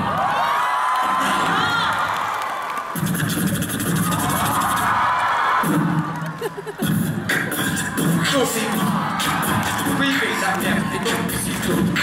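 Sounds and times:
audience cheering and screaming: 0:00.0 - 0:12.0
backing beat: 0:03.0 - 0:04.9, 0:06.7 - 0:12.0.

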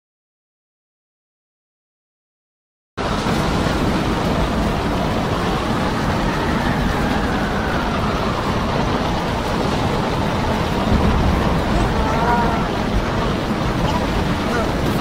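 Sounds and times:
rough sea rumbling: 0:03.0 - 0:15.0
storm wind rushing: 0:03.0 - 0:15.0.

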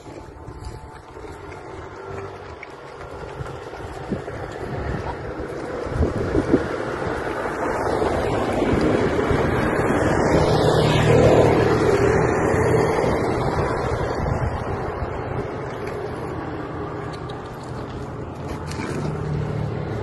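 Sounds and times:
vehicle passing: 0:00.0 - 0:20.0
wind on microphone: 0:03.0 - 0:16.4.

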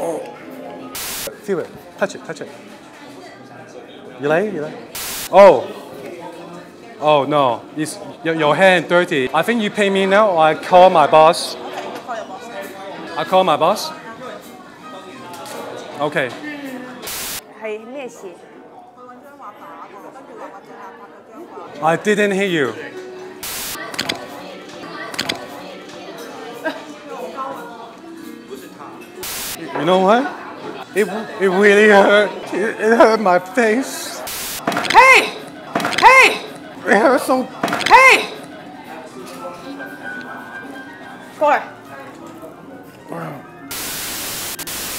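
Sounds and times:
cafe background noise: 0:00.0 - 0:44.9
chatter of diners: 0:00.0 - 0:44.9
static hiss: 0:01.0 - 0:01.3, 0:05.0 - 0:05.4, 0:17.1 - 0:17.4, 0:23.4 - 0:23.8, 0:29.2 - 0:29.6, 0:34.3 - 0:34.7, 0:43.7 - 0:44.9
loud voice breaking in: 0:34.8 - 0:36.5, 0:37.8 - 0:38.4
person calling out: 0:34.8 - 0:36.5, 0:37.8 - 0:38.4.

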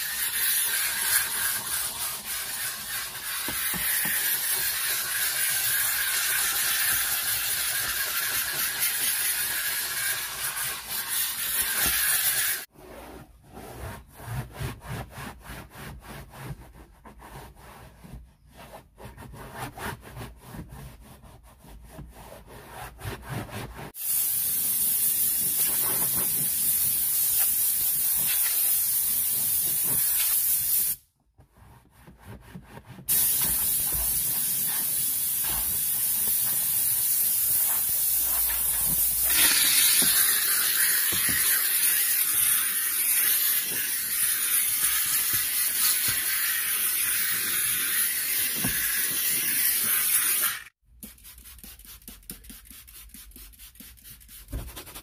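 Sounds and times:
steam cleaner nozzle hissing: 0:00.0 - 0:12.7, 0:24.0 - 0:31.0, 0:33.1 - 0:50.7
towel wiping a mat: 0:12.7 - 0:24.0, 0:31.4 - 0:39.5
compressed air blow gun hissing: 0:24.0 - 0:31.0, 0:33.1 - 0:50.4.

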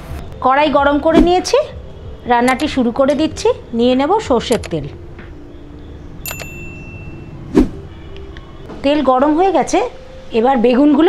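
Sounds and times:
sharp tick with ring: 0:06.2 - 0:07.2.

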